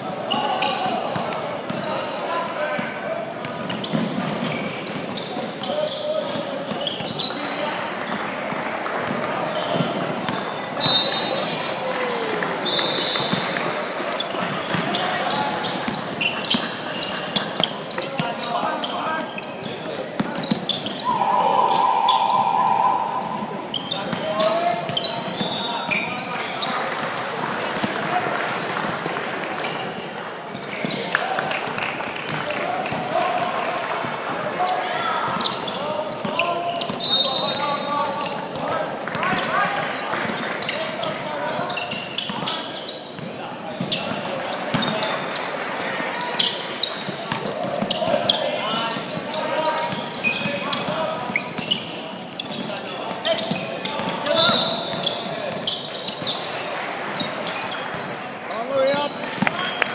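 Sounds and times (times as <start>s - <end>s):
sneakers squeaking: 0.1s - 7.6s, 9.0s - 26.8s, 30.5s - 31.1s, 32.3s - 59.9s
steady held tone: 21.0s - 24.0s
people calling out: 21.0s - 24.7s.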